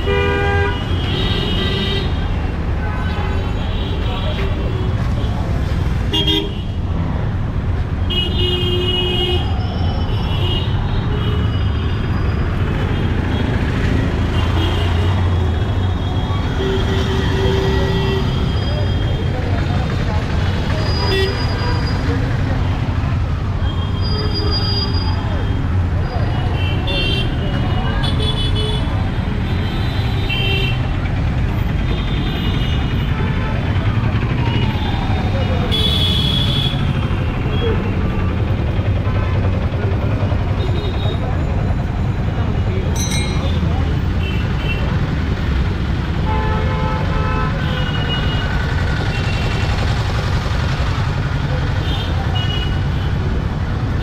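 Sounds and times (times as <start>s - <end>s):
traffic engines rumbling: 0.0s - 54.0s.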